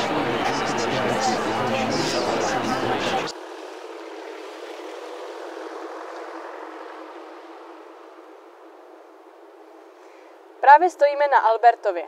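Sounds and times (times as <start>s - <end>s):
distant street ambience: 0.0s - 12.0s.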